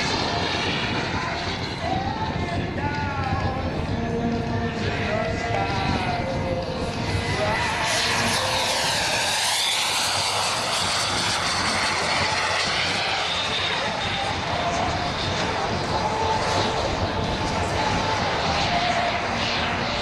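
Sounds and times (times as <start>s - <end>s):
model jet engines whining: 0.0s - 20.0s.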